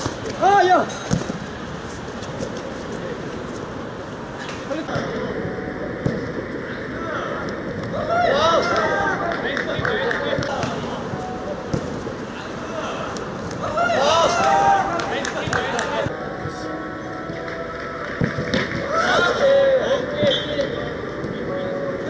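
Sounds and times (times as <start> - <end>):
ball kick thuds: 1.0 - 1.4, 6.0 - 6.4, 11.7 - 12.0
footballers shouting: 6.7 - 11.0, 12.3 - 16.1, 17.8 - 20.5.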